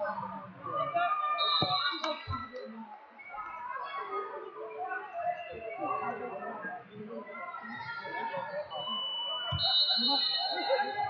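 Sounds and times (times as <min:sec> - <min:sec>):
gym chatter: 0:00.0 - 0:11.0.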